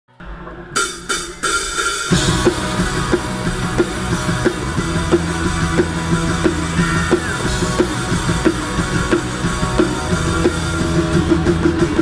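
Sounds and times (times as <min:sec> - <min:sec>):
rock band playing: 0:00.1 - 0:12.0.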